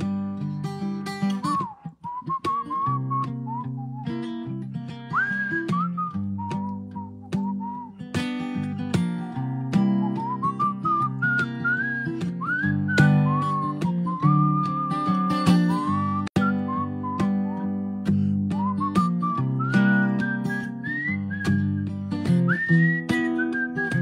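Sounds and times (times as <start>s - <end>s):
strummed acoustic guitar: 0.0s - 24.0s
man whistling a melody: 1.1s - 24.0s.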